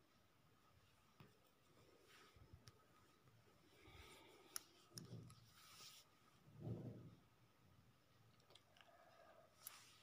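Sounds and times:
soft low thump: 6.5s - 7.2s.

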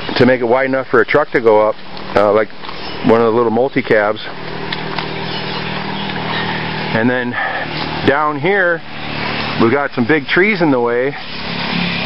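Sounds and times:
low vehicle engine hum: 0.0s - 12.0s
outdoor background hiss: 0.0s - 12.0s.

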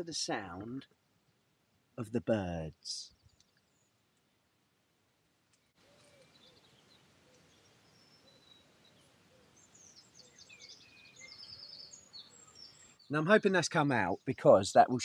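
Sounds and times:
small birds chirping and trilling: 2.8s - 4.3s, 5.6s - 14.3s.

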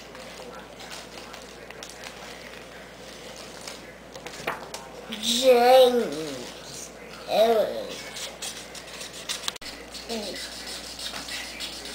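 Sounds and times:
faint room noise: 0.0s - 11.9s
marker scratching on paper: 7.4s - 11.9s.

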